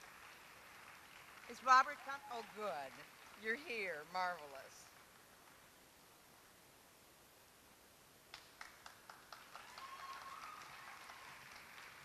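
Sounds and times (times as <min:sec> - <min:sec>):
small audience applause: 0:00.0 - 0:05.7, 0:08.3 - 0:12.0.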